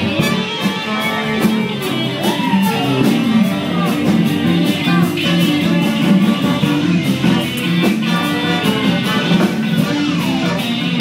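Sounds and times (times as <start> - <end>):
electric guitar: 0.0 - 11.0
live band playing dance music: 0.0 - 11.0.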